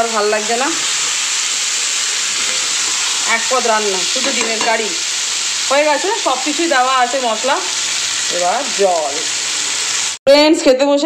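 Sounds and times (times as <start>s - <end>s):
curry sizzling in a pan: 0.0s - 10.2s
person speaking: 3.2s - 5.0s.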